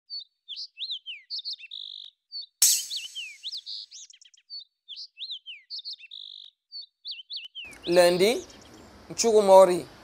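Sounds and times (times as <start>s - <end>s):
birds chirping and whistling: 0.1s - 9.0s.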